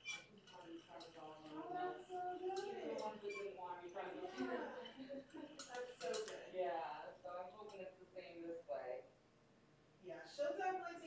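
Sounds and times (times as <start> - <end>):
voices talking: 0.0 - 9.1.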